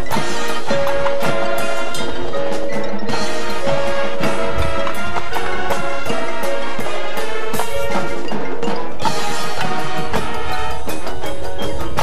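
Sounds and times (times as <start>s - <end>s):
held ensemble chords: 0.0s - 12.0s
marching band playing: 0.0s - 12.0s
marimbas playing: 0.0s - 12.0s
percussion strikes: 0.0s - 12.0s.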